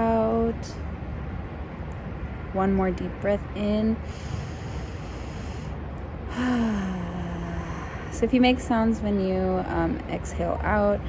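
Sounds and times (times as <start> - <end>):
woman breathing in deeply: 4.0 - 8.3.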